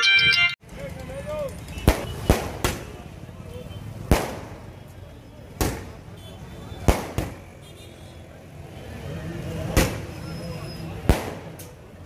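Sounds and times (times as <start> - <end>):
crowd noise: 0.0 - 12.0
firecracker bangs: 1.7 - 3.0, 4.0 - 4.7, 6.8 - 7.4, 11.0 - 11.6.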